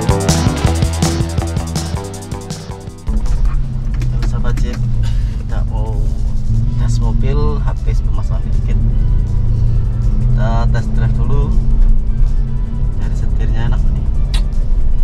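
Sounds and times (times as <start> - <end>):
engine and road rumble: 0.0 - 15.0
music: 0.0 - 15.0
voice: 4.0 - 4.9, 5.5 - 6.1, 6.7 - 9.0, 10.4 - 11.6, 13.0 - 14.0.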